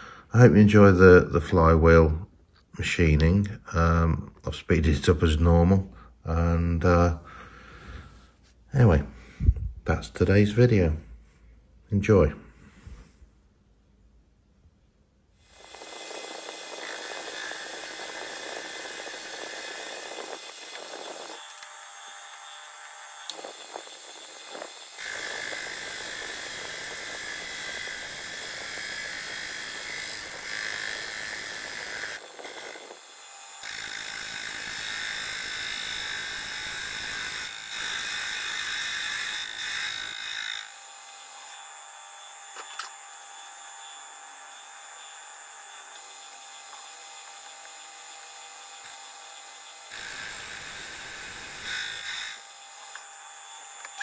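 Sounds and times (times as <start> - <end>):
cutting hiss: 15.4 - 41.5, 45.8 - 54.0
metal lathe whining: 15.5 - 54.0.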